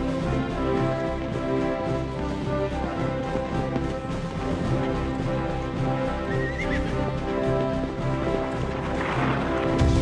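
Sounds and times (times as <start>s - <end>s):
orchestral music: 0.0s - 10.0s
horse whinnying: 6.2s - 7.0s.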